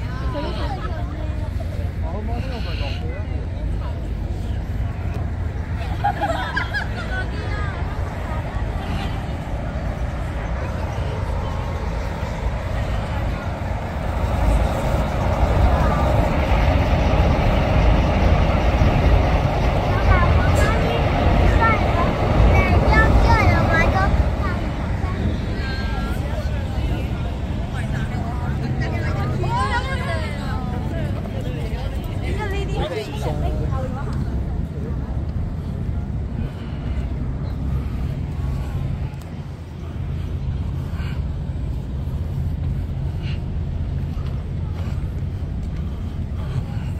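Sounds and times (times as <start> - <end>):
distant voices: 0.0 - 46.9
people talking walking by: 0.0 - 46.9
traffic rumble: 0.0 - 46.9.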